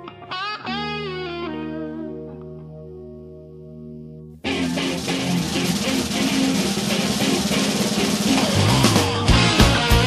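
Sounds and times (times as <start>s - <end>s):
distorted electric guitar: 0.0s - 2.9s, 4.4s - 10.0s
drums: 4.4s - 10.0s.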